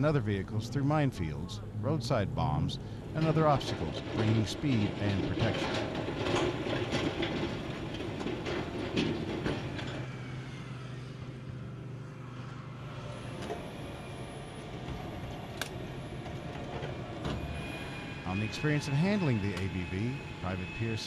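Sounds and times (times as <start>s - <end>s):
vehicle tracks clanking: 0.0s - 11.2s, 13.0s - 21.0s
engine hum: 0.0s - 21.0s.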